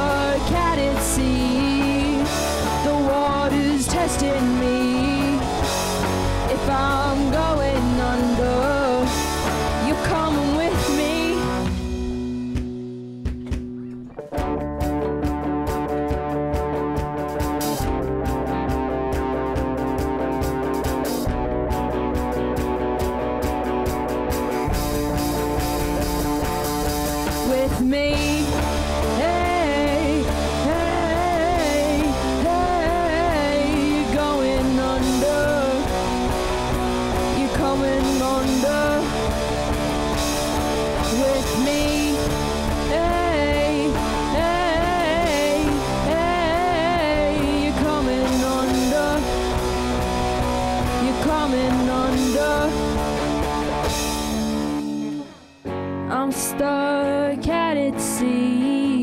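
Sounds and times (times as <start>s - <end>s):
lead guitar bending notes: 0.0s - 59.0s
rock band playing live: 0.0s - 59.0s.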